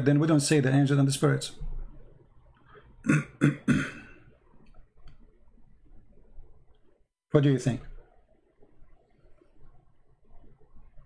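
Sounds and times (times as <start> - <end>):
man coughing: 3.1 - 4.2.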